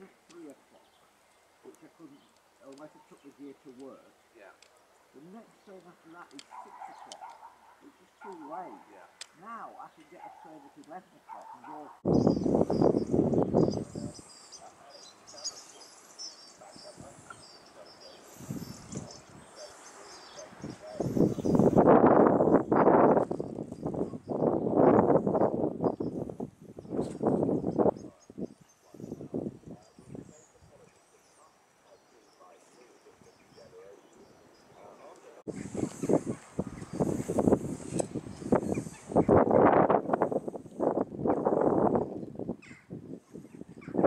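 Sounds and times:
songbird twittering: 0.0s - 39.8s.

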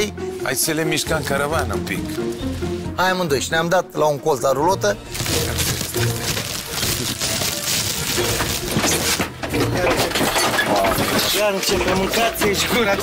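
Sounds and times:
music: 0.0s - 13.0s
loose things clattering and crashing: 5.2s - 13.0s.

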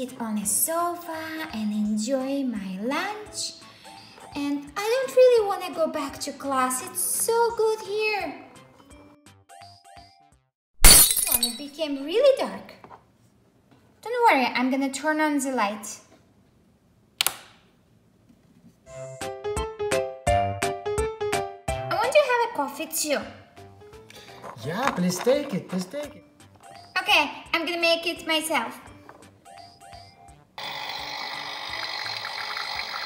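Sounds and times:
plastic light switch clicks: 17.2s - 17.6s
toy espresso machine hissing: 30.6s - 33.0s.

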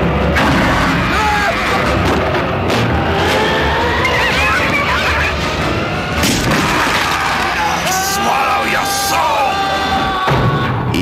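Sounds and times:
voices yelling and wailing: 2.8s - 10.9s.

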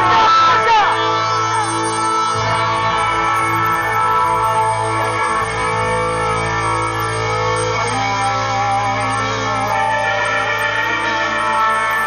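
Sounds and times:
bass: 0.0s - 12.0s
electric guitar chord: 0.0s - 12.0s.

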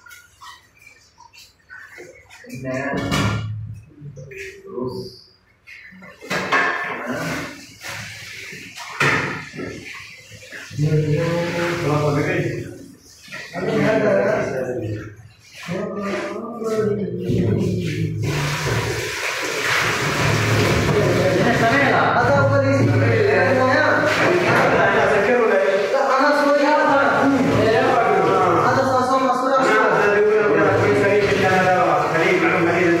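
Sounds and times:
tap water running into sink: 0.0s - 4.4s, 6.0s - 16.3s, 17.2s - 33.0s
men's voices: 10.5s - 18.6s, 20.8s - 33.0s.

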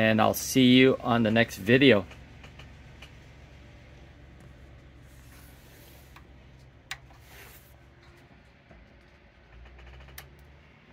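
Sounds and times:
faint low hum of deck: 0.0s - 10.9s.

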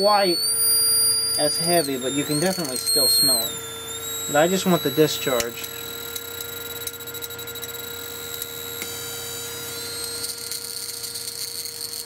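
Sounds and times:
high-pitched electrical whine: 0.0s - 12.0s
low electrical hum: 0.0s - 12.0s.

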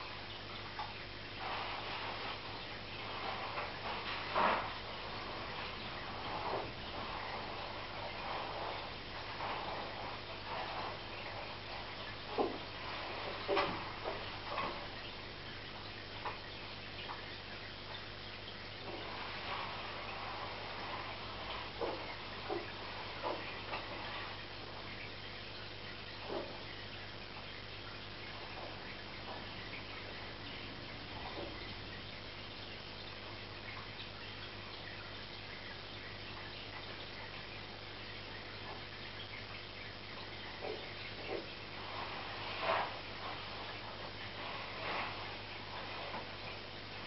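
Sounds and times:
hiss of moving water: 0.0s - 18.0s, 18.6s - 39.4s, 40.1s - 47.0s
low equipment hum: 0.0s - 47.0s.

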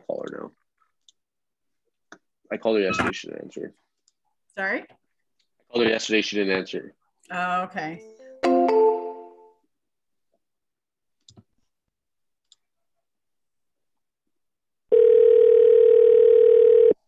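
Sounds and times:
telephone ringback tone: 14.9s - 17.0s.

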